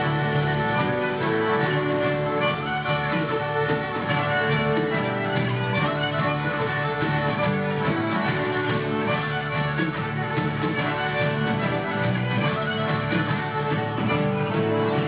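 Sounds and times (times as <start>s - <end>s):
accordion: 0.0s - 15.0s
drums: 0.0s - 15.0s
fiddle: 0.0s - 15.0s
strummed acoustic guitar: 0.0s - 15.0s.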